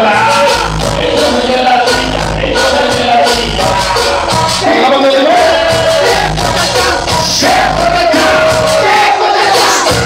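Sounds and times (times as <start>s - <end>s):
crowd singing along: 0.0s - 10.0s
cumbia music: 0.0s - 10.0s
men singing into a microphone: 0.0s - 10.0s.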